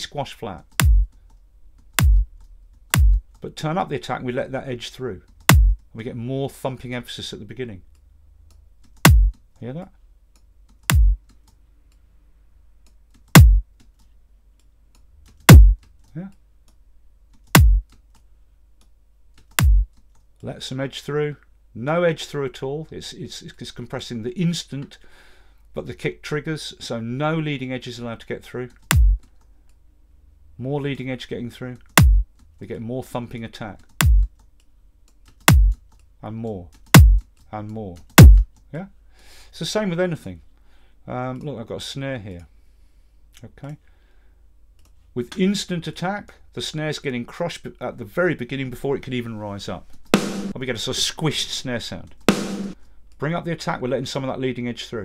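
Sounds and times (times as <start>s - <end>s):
kick drum hits: 0.8s - 1.1s, 2.0s - 2.3s, 2.9s - 3.3s, 5.5s - 5.8s, 9.0s - 9.4s, 10.9s - 11.2s, 13.4s - 13.7s, 15.5s - 15.8s, 17.6s - 17.9s, 19.6s - 19.9s, 28.9s - 29.2s, 32.0s - 32.3s, 34.0s - 34.3s, 35.5s - 35.8s, 37.0s - 37.2s, 38.2s - 38.5s, 50.2s - 50.6s, 52.3s - 52.8s.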